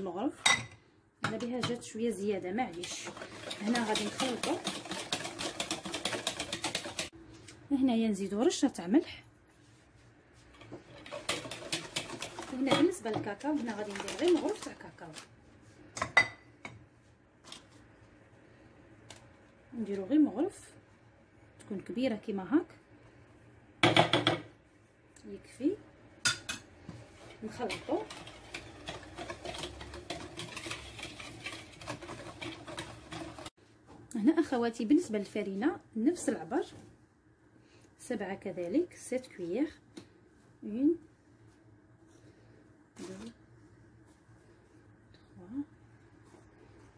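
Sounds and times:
whisk clinking and scraping bowl: 0:02.6 - 0:07.1, 0:10.6 - 0:14.9, 0:27.2 - 0:33.6
whisk wires clicking against bowl: 0:02.8 - 0:07.1.

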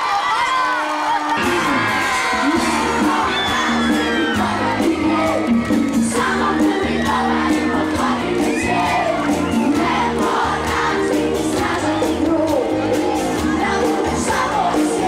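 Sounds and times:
crowd cheering and shouting: 0:00.0 - 0:15.0
live pop band playing: 0:01.3 - 0:15.0.

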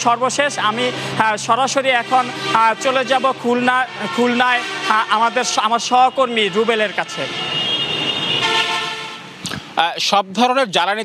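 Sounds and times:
road traffic noise: 0:00.0 - 0:11.0
vehicle horn honking: 0:01.8 - 0:09.3.

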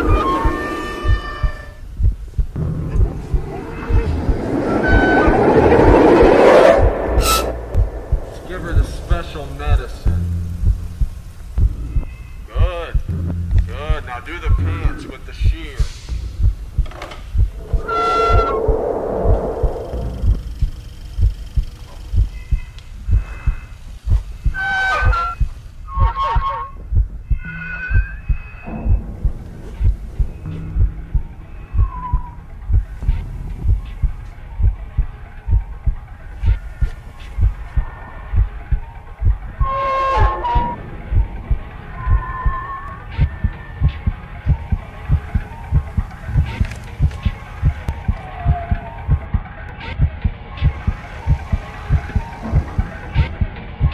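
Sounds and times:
short high-pitched wails: 0:00.0 - 0:01.8, 0:17.6 - 0:20.5
heartbeat-like low pulse: 0:00.0 - 0:24.6, 0:25.2 - 0:53.9.

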